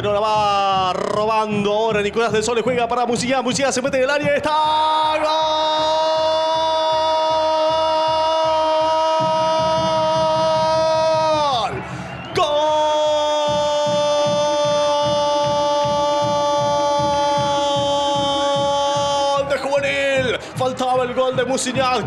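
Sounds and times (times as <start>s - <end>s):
commentator shouting goal: 0.0s - 22.0s
jingle with steady drum beat: 0.0s - 22.0s.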